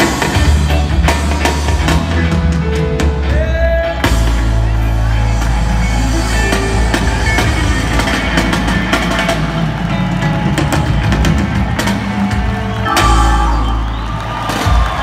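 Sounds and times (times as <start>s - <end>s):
live reggae band playing: 0.0s - 15.0s.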